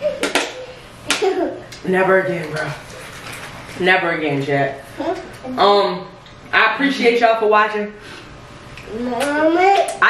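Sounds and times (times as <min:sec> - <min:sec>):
toddler's voice: 0:08.9 - 0:10.0.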